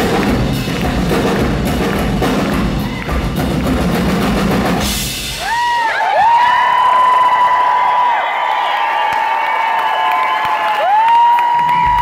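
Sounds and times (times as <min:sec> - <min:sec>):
crowd cheering and applauding: 0:00.0 - 0:12.0.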